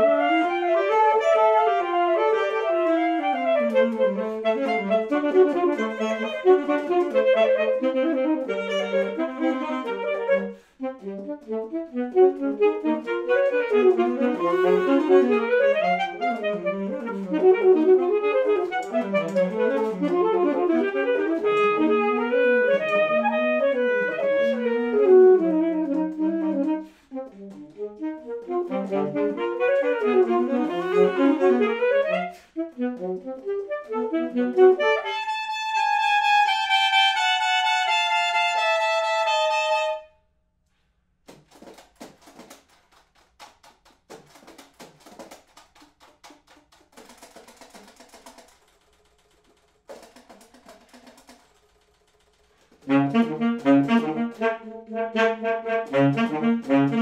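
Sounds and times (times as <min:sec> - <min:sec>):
alto saxophone duet: 0:00.0 - 0:40.2, 0:52.6 - 0:57.0.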